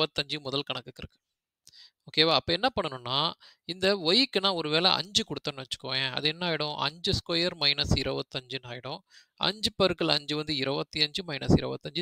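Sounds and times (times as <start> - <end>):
man speaking: 0.0 - 1.2, 2.1 - 12.0.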